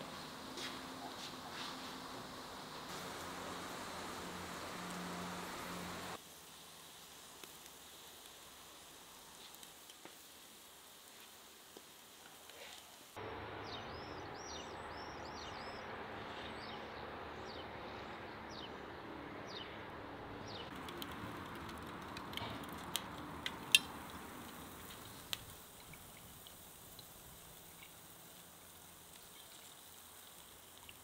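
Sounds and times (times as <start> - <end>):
steady hiss: 0.0 - 13.5, 20.7 - 31.0
steak sizzling on grill: 1.5 - 13.1, 20.7 - 31.0
small birds chirping: 13.6 - 19.8, 22.4 - 31.0.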